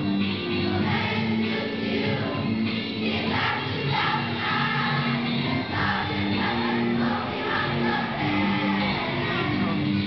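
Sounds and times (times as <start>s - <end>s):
children's choir singing: 0.0s - 9.8s.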